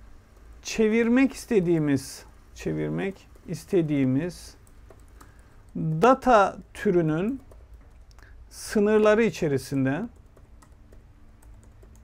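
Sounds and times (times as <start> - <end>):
computer keyboard typing: 2.7 - 6.2, 6.8 - 8.3, 10.0 - 12.0.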